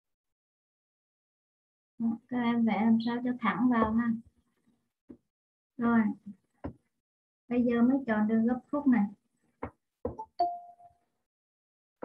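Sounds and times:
soft knocks: 0:06.6 - 0:06.8.

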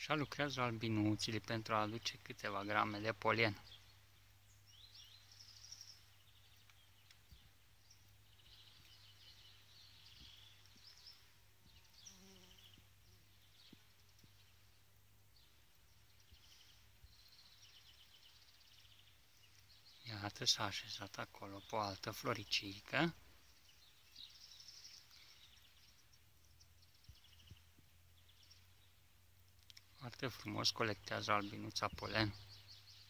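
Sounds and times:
faint bird chirps and trills: 0:00.0 - 0:33.0.

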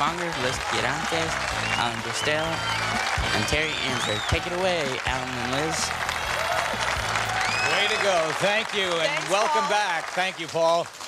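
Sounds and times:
audience applause: 0:00.0 - 0:11.0.

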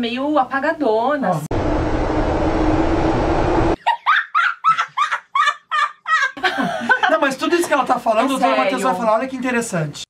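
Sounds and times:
subway train rumble: 0:01.5 - 0:03.8.

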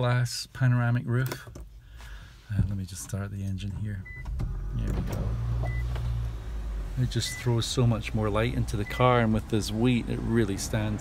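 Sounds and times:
car motor hum inside cabin: 0:02.5 - 0:11.0.

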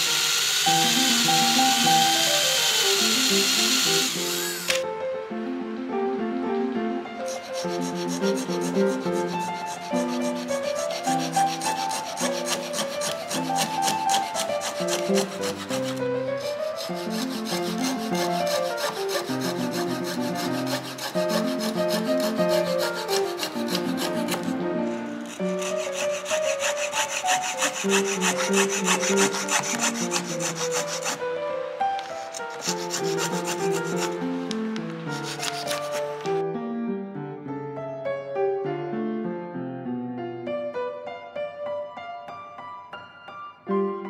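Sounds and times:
fret saw cutting wood: 0:00.0 - 0:04.8, 0:07.2 - 0:36.4
background music with held notes: 0:00.8 - 0:25.7, 0:27.5 - 0:44.0.

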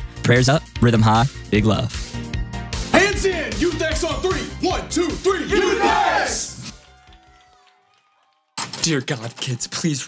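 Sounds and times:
music: 0:00.0 - 0:10.0
man speaking loudly: 0:02.9 - 0:06.4.

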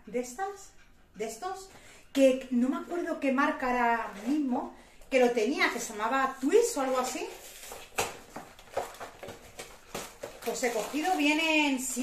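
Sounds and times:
packaging rustling: 0:06.3 - 0:12.0.

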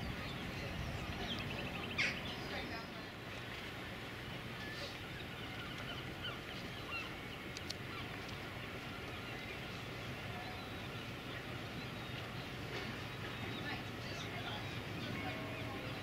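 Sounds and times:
birds chirping: 0:00.0 - 0:16.0
distant indistinct voices: 0:00.0 - 0:16.0
faint clicks: 0:07.4 - 0:09.2.

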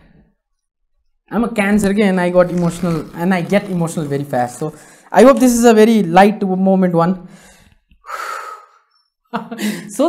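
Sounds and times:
man taking deep breath: 0:04.8 - 0:05.1, 0:07.3 - 0:08.9.

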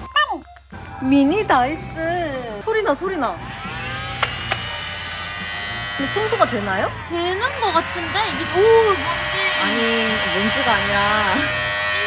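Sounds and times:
toy vacuum cleaner whirring: 0:03.4 - 0:12.0.

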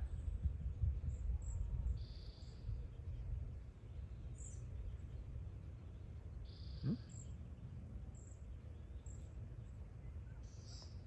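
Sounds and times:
faint tiny peeps: 0:06.6 - 0:07.2.

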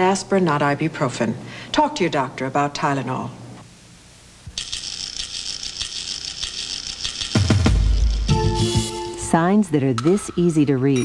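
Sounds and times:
rapid ratcheting click rattle: 0:04.6 - 0:08.4
commercial music: 0:07.4 - 0:10.4.

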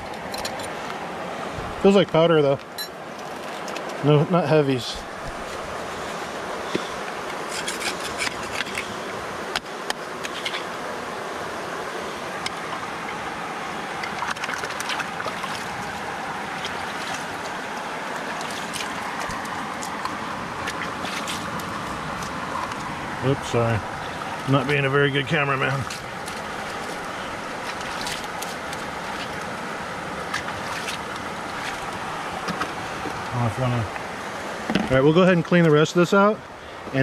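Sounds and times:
river flowing: 0:00.0 - 0:37.0
grit and rock scraping: 0:05.4 - 0:09.0.

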